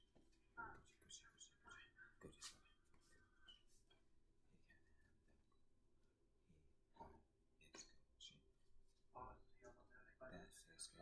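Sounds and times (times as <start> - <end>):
person whispering: 0.5 - 3.8, 7.0 - 11.0.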